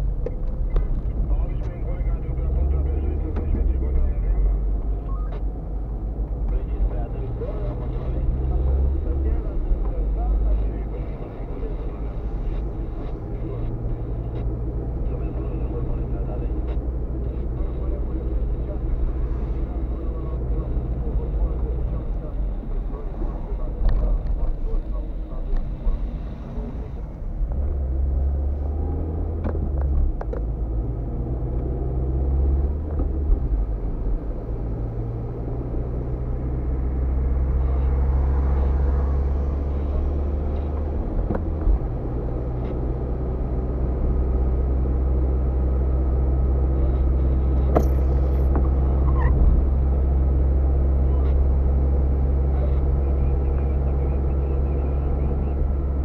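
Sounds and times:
car engine and road drone: 0.0s - 56.0s.

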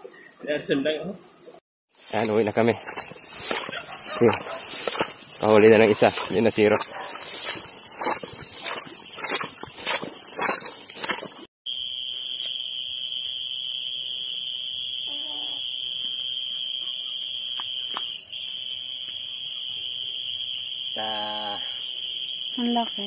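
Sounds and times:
night insects droning: 0.0s - 23.0s
rustling handling noise: 2.0s - 11.4s.

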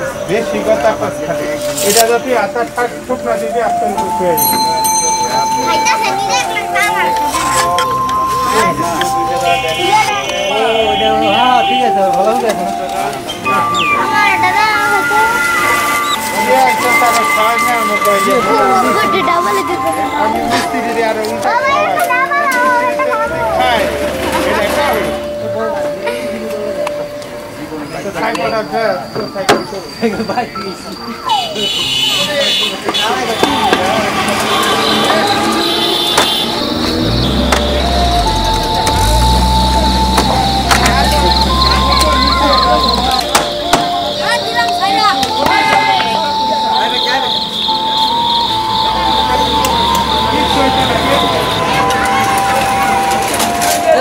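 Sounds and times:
children calling and shouting: 0.0s - 54.0s
steady low tone: 35.4s - 44.2s.

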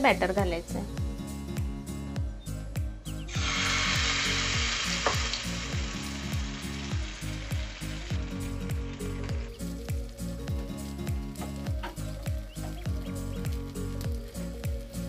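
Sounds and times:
batter sizzling in hot oil: 3.3s - 15.0s.

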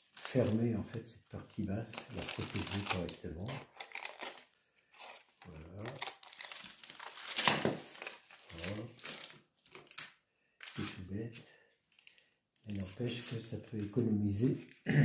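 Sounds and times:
foil tape crinkling: 0.0s - 11.0s, 11.9s - 14.8s.

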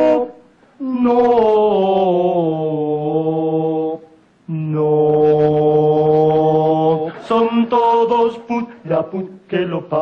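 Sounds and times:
men singing a cappella chant: 0.0s - 10.0s.

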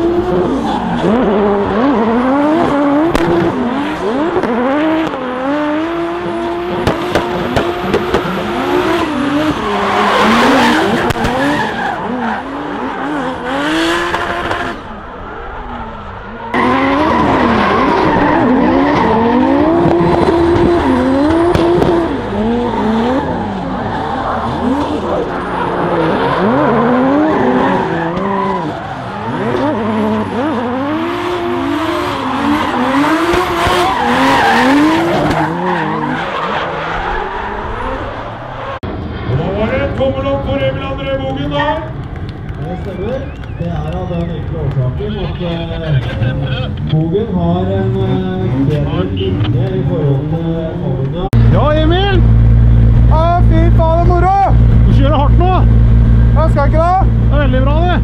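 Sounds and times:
car engines revving: 0.0s - 58.0s.

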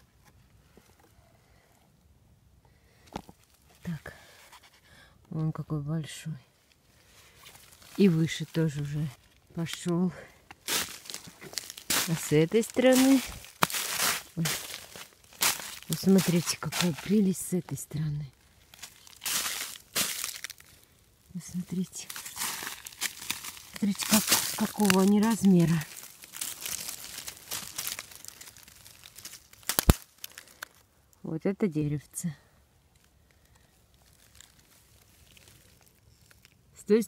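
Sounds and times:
footsteps crunching on snow and leaves: 7.2s - 17.7s, 18.4s - 30.6s, 33.9s - 36.5s.

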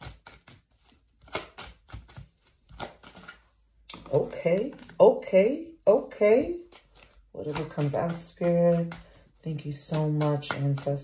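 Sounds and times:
playing cards snapping and flicking: 0.0s - 3.4s.

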